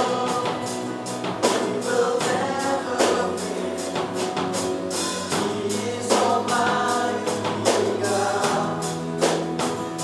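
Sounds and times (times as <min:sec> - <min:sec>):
man singing: 0:00.0 - 0:04.3, 0:05.3 - 0:09.3
live band playing: 0:00.0 - 0:10.0.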